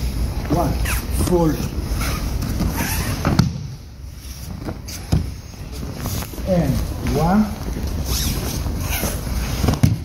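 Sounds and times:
bodies thudding on mats: 2.4 - 3.8, 9.5 - 10.0.

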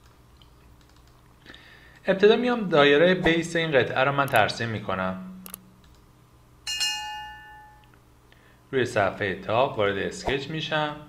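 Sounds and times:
bell-like notification chime: 6.7 - 7.9.

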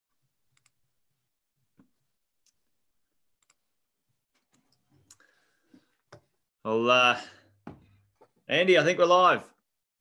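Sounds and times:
soft clicks: 0.5 - 0.8, 3.4 - 3.6.

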